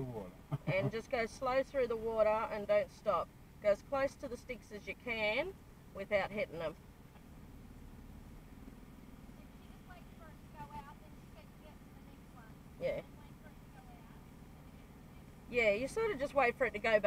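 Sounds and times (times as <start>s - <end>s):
quiet voices murmuring: 0.0s - 1.4s
engine idling hum: 0.0s - 17.0s.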